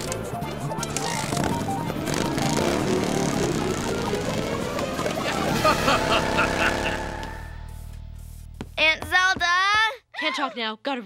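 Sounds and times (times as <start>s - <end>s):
cartoon motorcycle engine: 0.8s - 7.6s.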